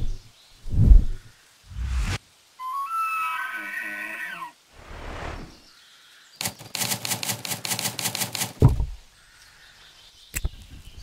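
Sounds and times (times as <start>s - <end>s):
typewriter keystroke clicks: 6.4s - 8.6s.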